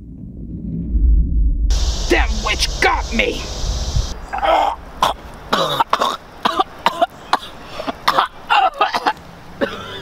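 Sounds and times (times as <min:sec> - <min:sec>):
man coughing hard: 0:05.0 - 0:10.0.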